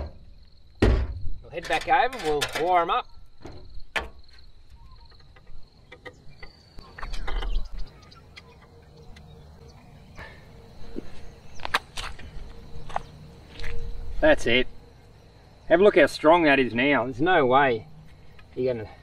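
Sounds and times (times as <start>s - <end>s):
high insect drone: 0.0s - 19.0s.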